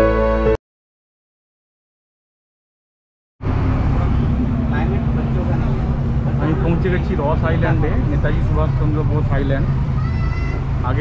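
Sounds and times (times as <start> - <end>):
boat engine droning: 3.4 - 11.0.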